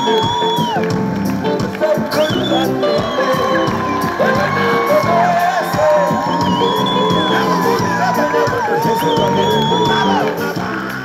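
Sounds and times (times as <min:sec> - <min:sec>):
crowd cheering: 0:00.0 - 0:11.0
live band music: 0:00.0 - 0:11.0.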